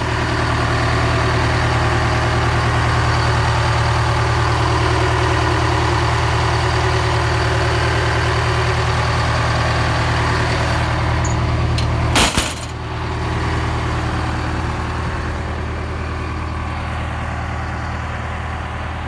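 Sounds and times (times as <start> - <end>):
diesel engine idling: 0.0 - 19.0.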